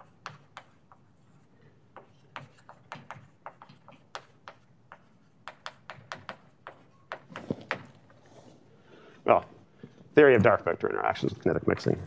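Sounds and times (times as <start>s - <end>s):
chalk tapping and scraping: 0.0s - 8.4s.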